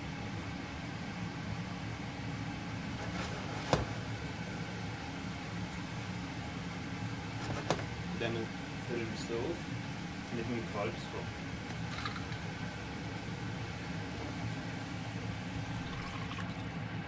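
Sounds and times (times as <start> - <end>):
apples frying in a pan: 0.5 - 17.0.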